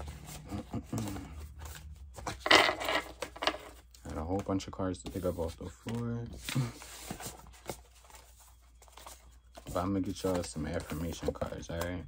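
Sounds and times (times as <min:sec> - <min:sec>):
cards being handled: 0:00.0 - 0:12.0
cards rustling: 0:00.0 - 0:12.0.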